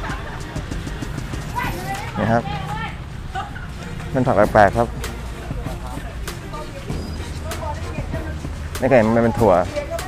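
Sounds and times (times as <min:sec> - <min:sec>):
busy market background noise: 0:00.0 - 0:10.0
man speaking: 0:04.2 - 0:06.2, 0:08.8 - 0:09.8.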